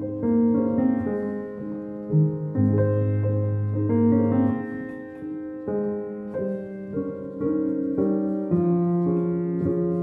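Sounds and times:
solo piano improvisation: 0:00.0 - 0:10.0.

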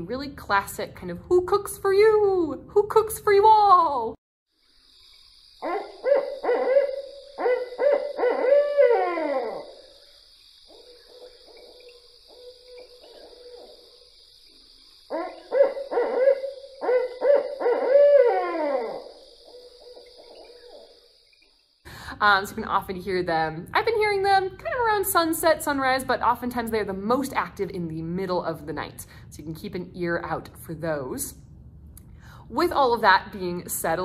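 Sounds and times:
owl hooting call: 0:05.6 - 0:10.1, 0:10.7 - 0:14.0, 0:15.1 - 0:21.0
faint owl hooting: 0:05.6 - 0:14.2, 0:15.0 - 0:21.0.

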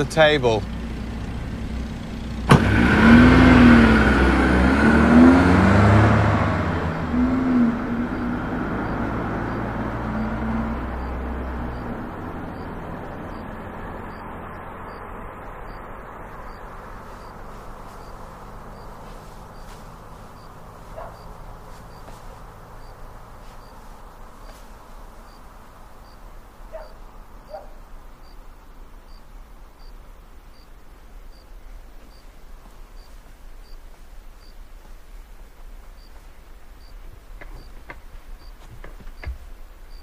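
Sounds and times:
car engine revving: 0:00.0 - 0:28.4
car door shutting: 0:02.4 - 0:03.0.

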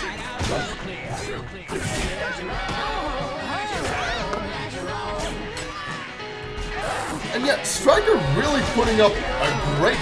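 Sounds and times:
soundtrack music: 0:00.0 - 0:10.0.

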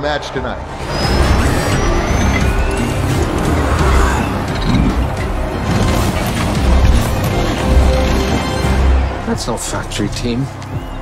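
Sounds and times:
film score music: 0:00.0 - 0:11.0
motors running with rising whine: 0:00.8 - 0:08.5.

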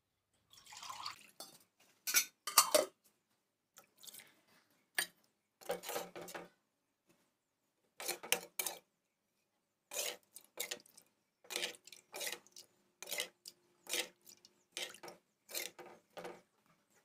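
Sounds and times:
steel spoon scraping a steel pan: 0:05.6 - 0:06.4, 0:08.0 - 0:08.8, 0:09.9 - 0:10.8, 0:11.5 - 0:16.1.

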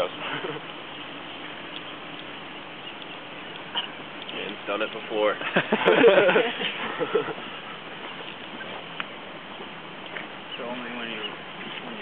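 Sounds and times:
outdoor background hiss: 0:00.0 - 0:12.0
faint clicks: 0:01.7 - 0:05.0.

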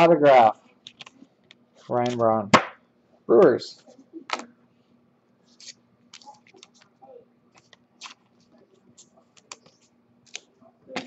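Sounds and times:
card packs and boxes handled: 0:05.5 - 0:11.0.

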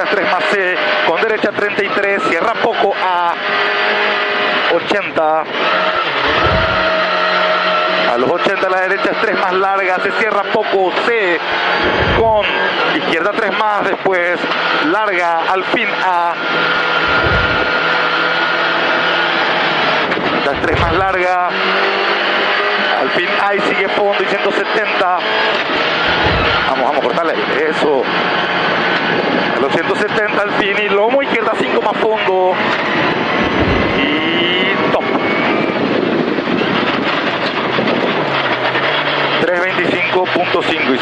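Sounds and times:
gravel and road noise: 0:00.0 - 0:41.0
rally car engine under load: 0:00.0 - 0:41.0
low thudding: 0:06.2 - 0:07.2, 0:11.8 - 0:12.6, 0:17.0 - 0:18.1, 0:20.4 - 0:21.4, 0:26.0 - 0:26.8, 0:33.0 - 0:34.4.

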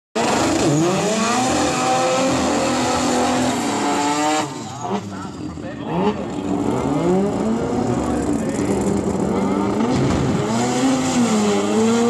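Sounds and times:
drag cars accelerating hard: 0:00.2 - 0:12.0.

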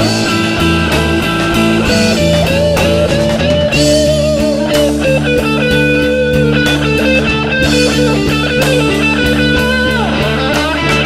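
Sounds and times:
bass guitar: 0:00.0 - 0:11.0
drum kit with cymbal hits: 0:00.0 - 0:11.0
electric lead guitar with vibrato: 0:00.0 - 0:11.0.

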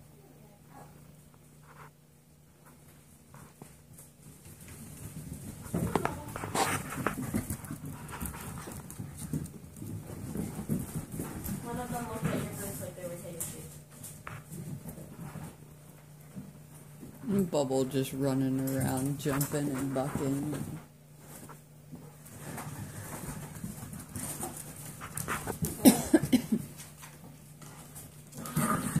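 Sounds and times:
puppy paws thumping and scrabbling: 0:01.3 - 0:29.0
claws clicking on hard floor: 0:03.3 - 0:17.2, 0:21.2 - 0:29.0.

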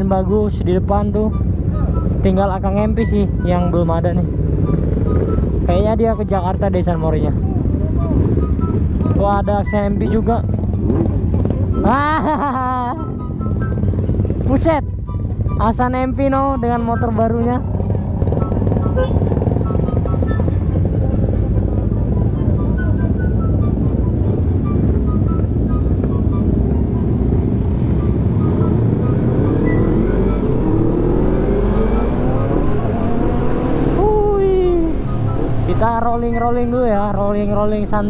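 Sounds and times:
background music: 0:00.0 - 0:38.0
motorcycle engines accelerating: 0:00.0 - 0:38.0.

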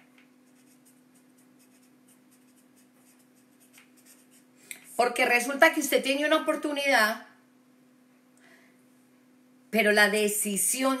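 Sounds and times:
light scratching: 0:00.4 - 0:04.5
speech: 0:05.0 - 0:07.4, 0:09.8 - 0:11.0.

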